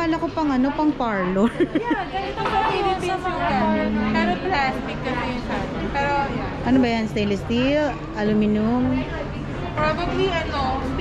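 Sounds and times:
women chatting: 0.0s - 11.0s
women laughing: 1.4s - 3.2s.

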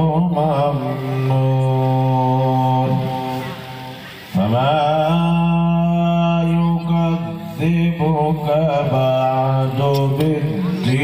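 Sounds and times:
man reciting melodically into microphone: 0.0s - 11.0s.

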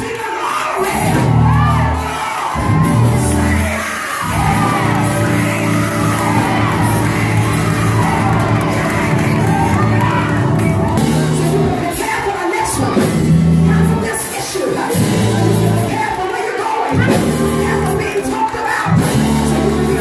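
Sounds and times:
voices shouting and whooping: 0.0s - 13.0s
church music with low bass: 0.8s - 14.1s, 14.7s - 16.0s, 16.9s - 20.0s.

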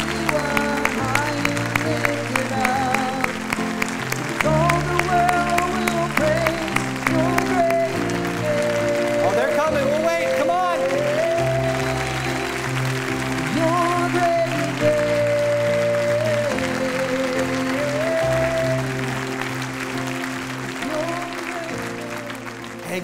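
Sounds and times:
congregation applauding: 0.0s - 23.0s
person singing with vibrato: 0.0s - 23.0s.

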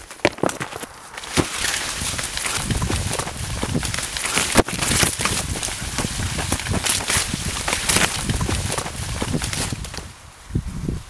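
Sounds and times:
footsteps thudding: 0.0s - 10.1s
leaves and stalks rustling: 0.0s - 11.0s.

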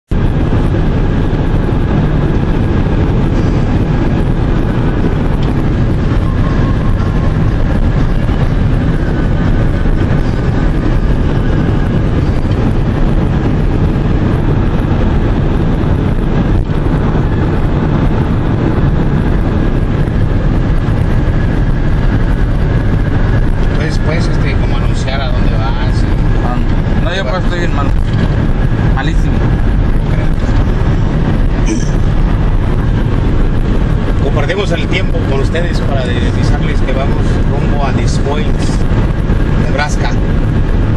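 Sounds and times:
car road and wind noise: 0.0s - 40.9s.

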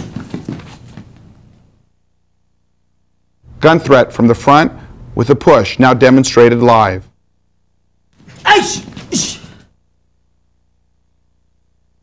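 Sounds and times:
man shouting: 8.4s - 9.6s.

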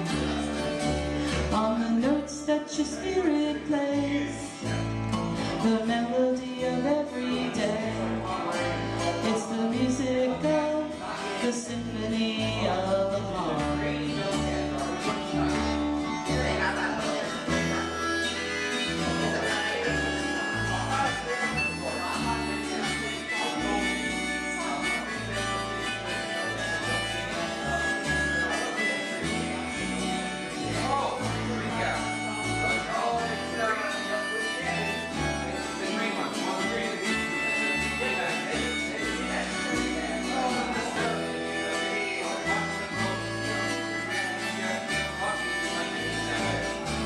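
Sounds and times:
acoustic bass guitar: 0.0s - 47.0s
acoustic guitar: 0.0s - 47.0s
harmonica long notes: 0.0s - 47.0s.

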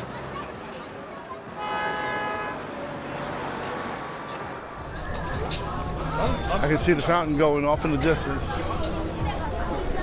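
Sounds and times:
chatter of passers-by: 0.0s - 10.0s
street traffic: 0.0s - 10.0s
car horn honking: 1.5s - 2.8s.

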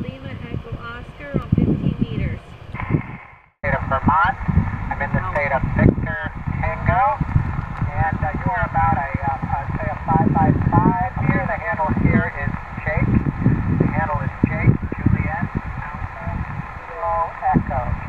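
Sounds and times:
thin radio speech: 0.0s - 7.2s, 7.9s - 18.0s
low rumble of background noise: 0.0s - 18.0s.

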